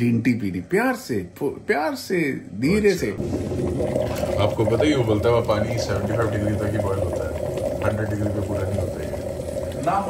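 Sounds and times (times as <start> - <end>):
water boiling in kettle: 2.6 - 10.0.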